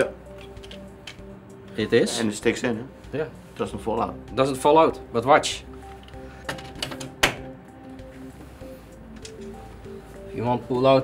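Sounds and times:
background music with short notes: 0.0 - 11.0.

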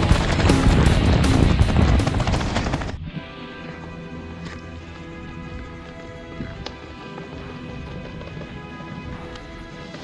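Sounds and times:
sharp percussion hits: 0.0 - 2.9.

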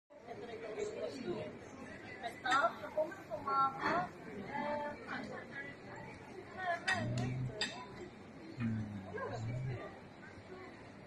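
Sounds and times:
distant murmur of voices: 0.1 - 11.0.

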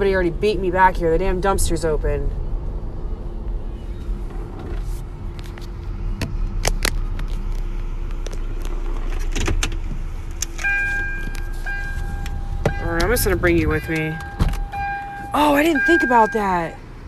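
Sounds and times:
car engine idling: 0.0 - 17.0
car electronic warning chime: 10.6 - 16.8.

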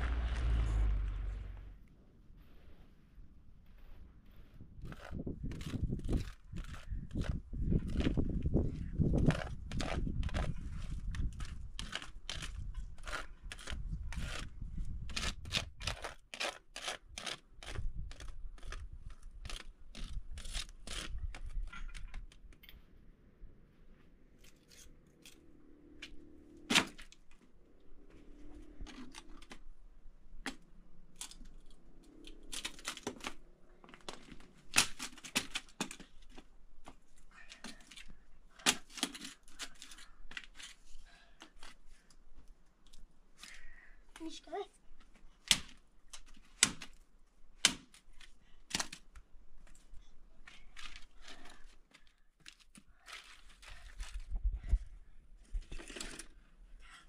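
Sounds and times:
scraping and crunching: 0.0 - 1.8, 3.6 - 22.9, 47.6 - 54.7
dry sticks snapping underfoot: 30.4 - 37.0.

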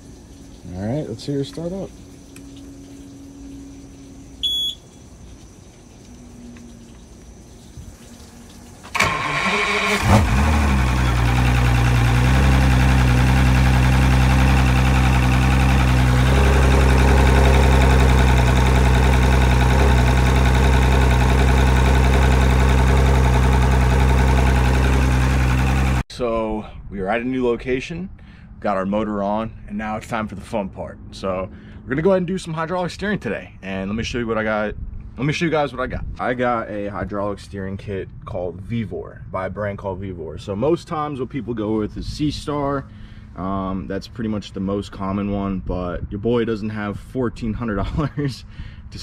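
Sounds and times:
short beep: 4.4 - 4.9
outboard motor starting and idling: 8.8 - 26.0.

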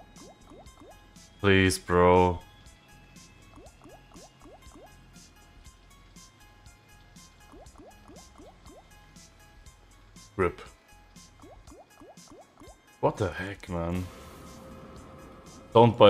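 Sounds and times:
quiet background music: 0.0 - 16.0
quick rising bubbly blips: 7.4 - 8.9.

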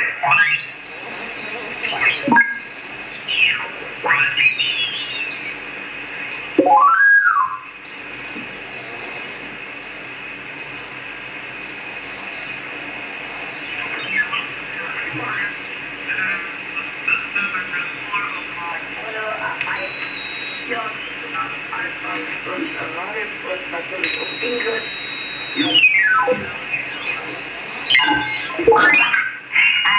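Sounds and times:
radio band hiss: 0.0 - 29.9
whistling heterodyne tones: 0.5 - 7.8, 13.4 - 22.5, 23.9 - 29.9.

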